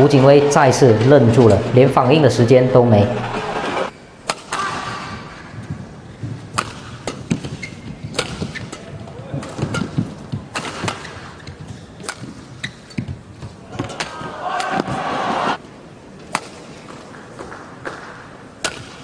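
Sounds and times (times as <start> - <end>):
low arena background: 0.0 - 19.0
racket striking shuttlecock: 6.5 - 13.2, 16.2 - 19.0
shoe squeaks on court: 7.4 - 8.8, 12.6 - 13.1.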